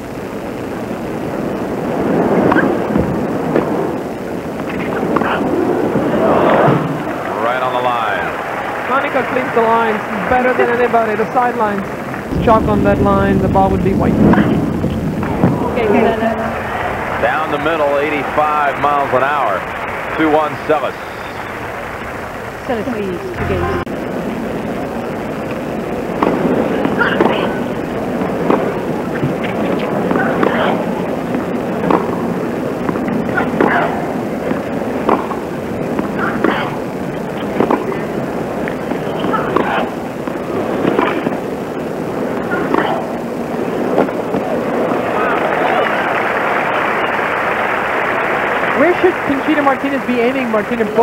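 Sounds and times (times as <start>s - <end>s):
crowd applause: 4.6s - 12.8s, 14.2s - 51.0s
crowd murmur: 4.7s - 51.0s
tennis ball strikes and bounces: 31.8s - 32.2s, 35.0s - 35.4s.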